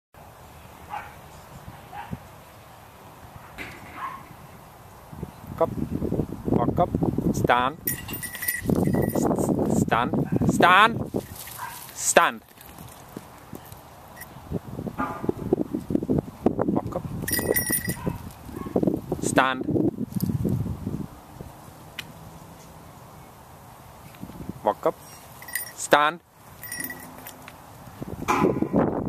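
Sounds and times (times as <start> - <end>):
dog yipping: 4.0 - 4.3, 17.9 - 18.8
footsteps on dirt and wood chips: 11.1 - 13.9.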